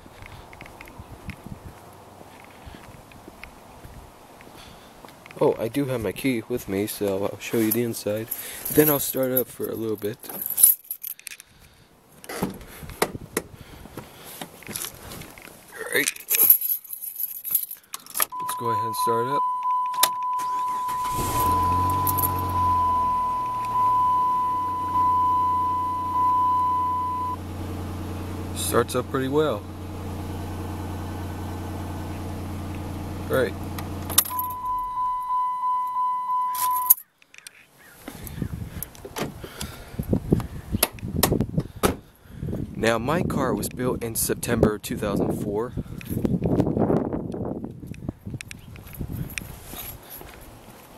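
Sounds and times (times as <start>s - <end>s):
car keys jangling: 7.7s - 11.5s, 14.6s - 27.4s, 34.0s - 37.5s
car engine idling: 18.4s - 35.8s
clicks: 23.4s - 23.8s
car door clicks and knocks: 40.8s - 42.0s.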